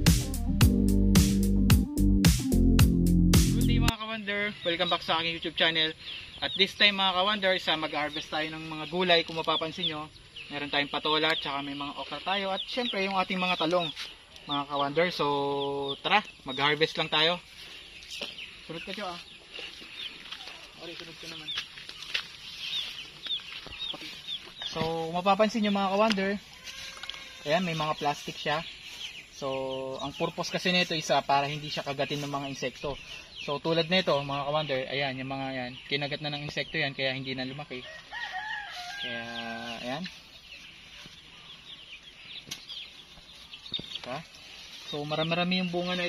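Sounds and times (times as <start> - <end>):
birds chirping: 0.0 - 46.0
chicks peeping: 3.7 - 46.0.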